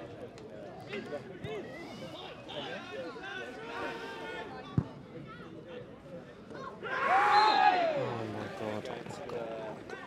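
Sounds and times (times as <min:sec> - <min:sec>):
general chatter: 0:00.0 - 0:10.0.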